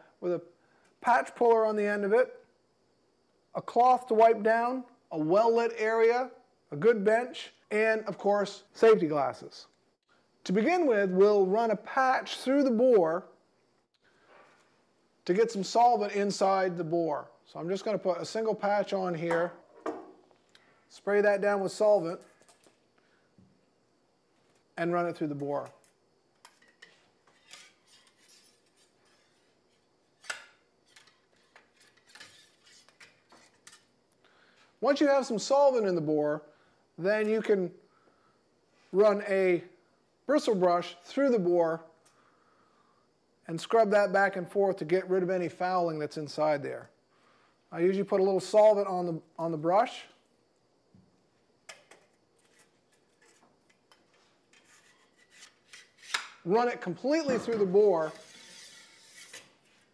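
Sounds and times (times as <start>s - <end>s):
light rubbing: 25.4s - 33.9s, 52.4s - 56.2s, 57.0s - 59.9s
cleaning rod scraping in bore: 57.8s - 59.6s.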